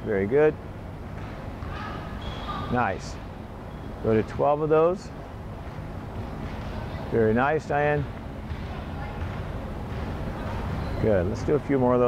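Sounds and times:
gym hall room tone rumble: 0.0s - 12.0s.

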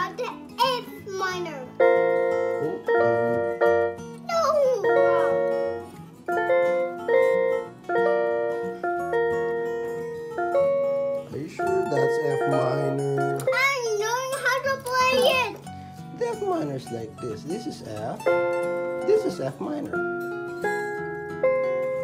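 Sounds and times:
electronic keyboard chords: 0.0s - 22.0s.

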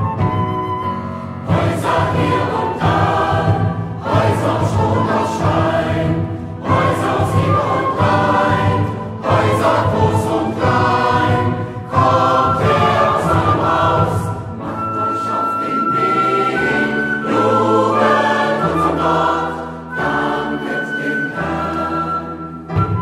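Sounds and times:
low accompaniment: 0.0s - 23.0s
choir singing: 1.3s - 23.0s.

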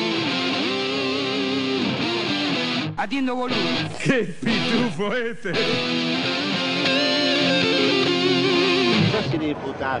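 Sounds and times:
electric guitar chord: 0.0s - 9.3s.

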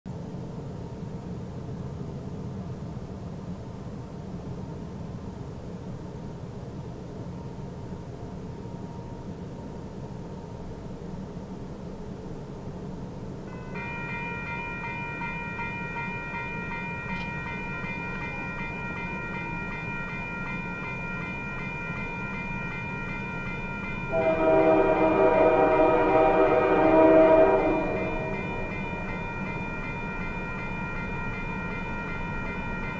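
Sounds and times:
freight train rumbling: 0.1s - 32.9s
railroad crossing bell ringing: 13.4s - 32.9s.

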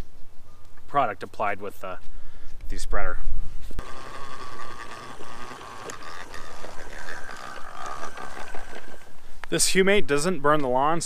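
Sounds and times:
spreader gears whining: 3.8s - 9.5s.

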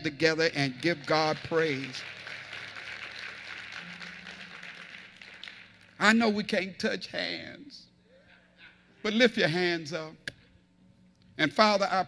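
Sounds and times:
congregation applauding: 0.5s - 6.3s.

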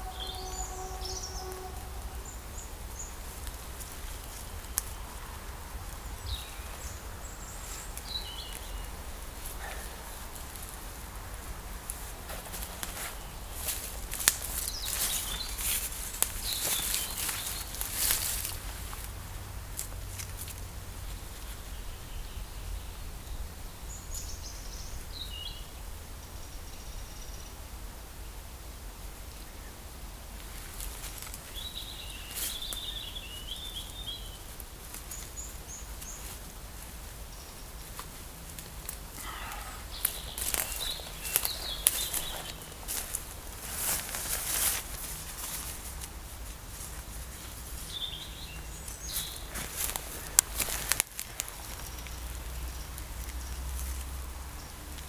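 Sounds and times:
small birds chirping: 0.0s - 19.2s, 29.2s - 55.0s
crackling clicks: 3.4s - 5.0s, 48.8s - 54.2s
footsteps on forest floor: 5.9s - 19.2s, 37.8s - 52.6s.

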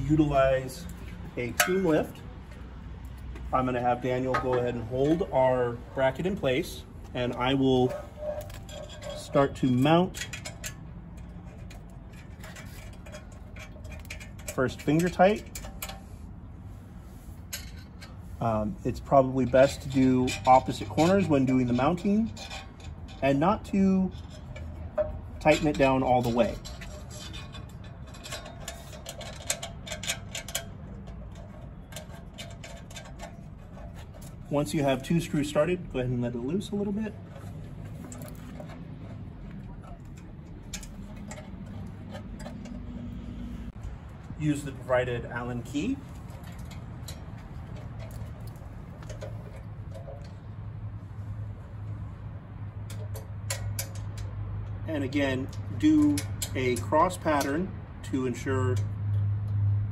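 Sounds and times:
metal parts clicking: 19.4s - 50.7s, 52.7s - 57.7s.

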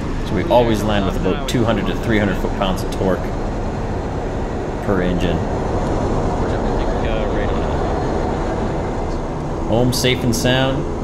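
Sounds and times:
turboprop engines droning: 0.0s - 11.0s.

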